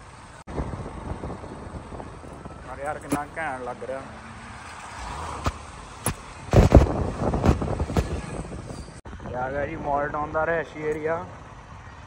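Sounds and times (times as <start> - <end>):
road noise: 0.0 - 12.0
motorcycle passing close: 1.2 - 8.7
sharp clicks: 5.4 - 8.2.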